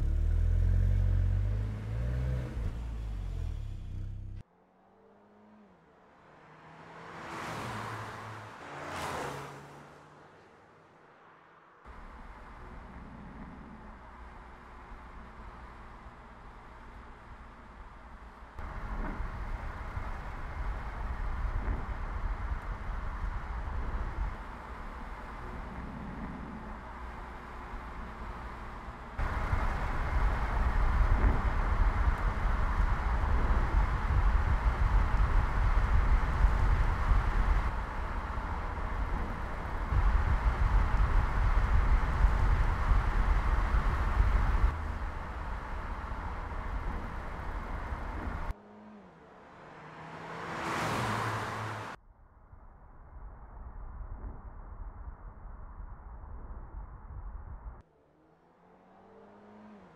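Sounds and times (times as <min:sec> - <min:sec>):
tyre and road rumble: 0:00.0 - 0:04.4, 0:11.9 - 0:52.0
car passing whoosh: 0:00.0 - 0:14.0, 0:18.6 - 0:52.0.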